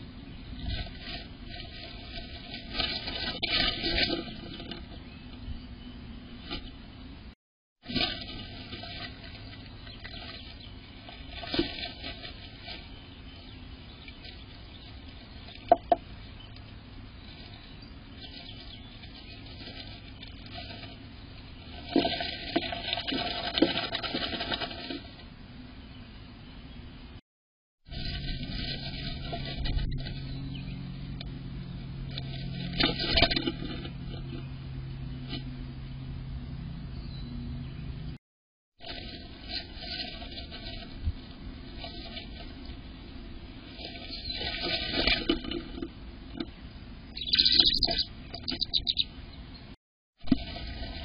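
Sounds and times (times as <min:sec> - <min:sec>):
bird rustling in nest: 0:00.6 - 0:04.9, 0:07.9 - 0:13.3, 0:17.2 - 0:25.2, 0:27.9 - 0:30.5, 0:32.1 - 0:34.4, 0:38.8 - 0:49.0, 0:50.3 - 0:51.0
bird chirping: 0:34.2 - 0:38.2, 0:46.3 - 0:49.7.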